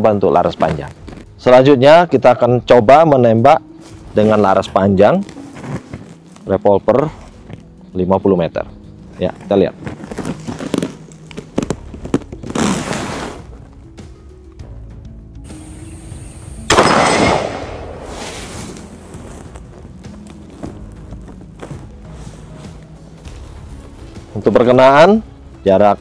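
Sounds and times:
background music: 0:00.0 - 0:26.0
revolver shot: 0:16.7 - 0:18.2.

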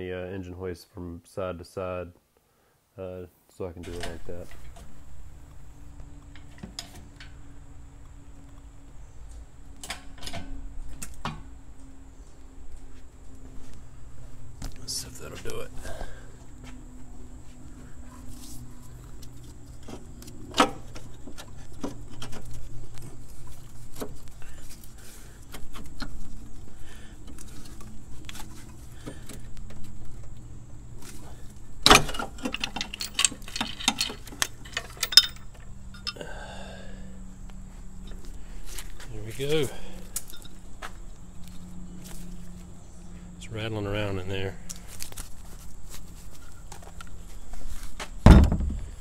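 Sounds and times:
sharp metal clanks: 0:31.8 - 0:36.2
metallic clinks of hand tools: 0:31.9 - 0:36.2.

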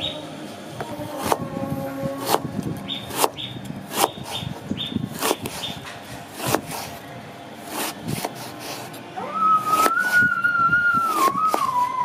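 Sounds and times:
knife cutting soft fruit pulp: 0:01.1 - 0:01.4, 0:02.2 - 0:07.0, 0:07.6 - 0:09.0, 0:09.6 - 0:10.2, 0:11.0 - 0:11.9
high steady whistling tone: 0:09.2 - 0:12.0.

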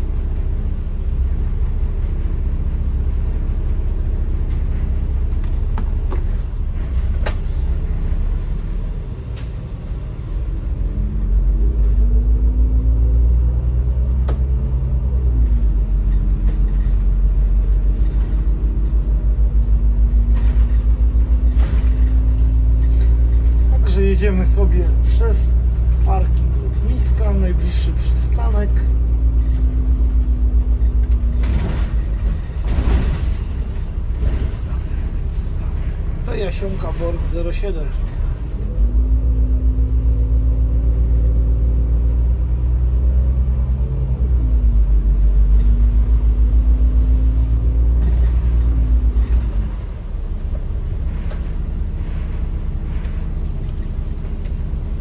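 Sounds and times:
bus diesel engine rumbling: 0:00.0 - 0:55.0.

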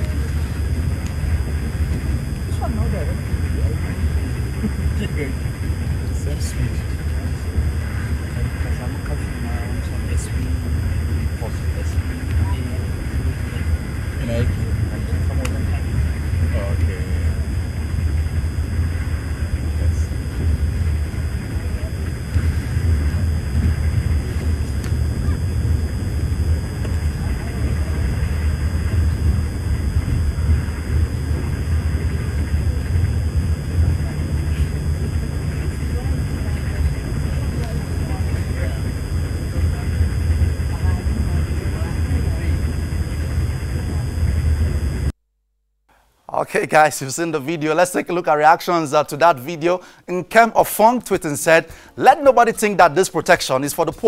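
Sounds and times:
train rumbling inside carriage: 0:00.0 - 0:45.1.

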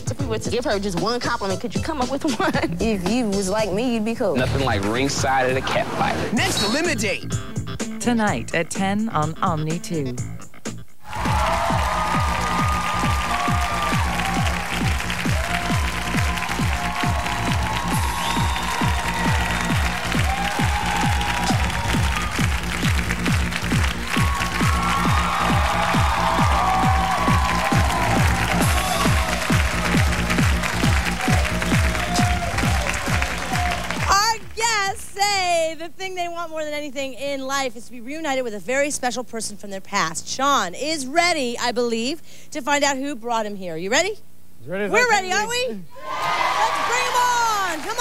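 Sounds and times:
talk show theme music: 0:00.0 - 0:48.0
studio audience applauding: 0:11.0 - 0:34.6, 0:46.0 - 0:48.0.

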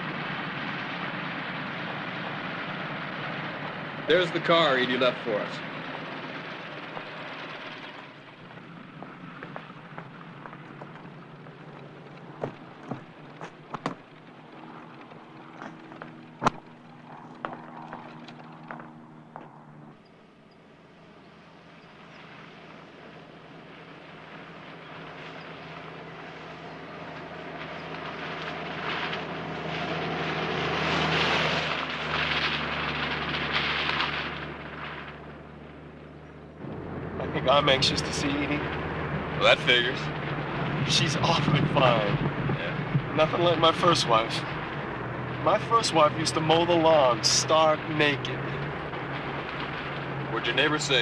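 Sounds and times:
vehicle engine hum: 0:00.0 - 0:51.0
footsteps: 0:08.4 - 0:14.0, 0:15.5 - 0:20.0
tyre noise on dirt: 0:08.4 - 0:20.0
wind noise: 0:36.6 - 0:45.4.

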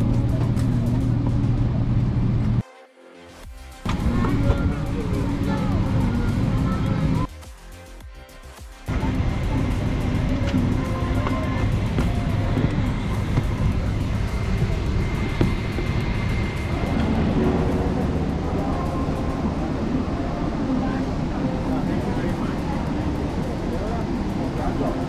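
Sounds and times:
airliner cabin rumble: 0:00.0 - 0:02.6, 0:03.8 - 0:07.3, 0:08.9 - 0:25.0.

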